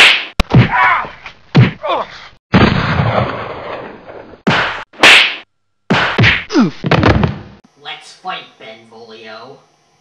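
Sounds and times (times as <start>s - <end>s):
sharp loud whacks: 0.0s - 0.8s, 4.5s - 7.5s.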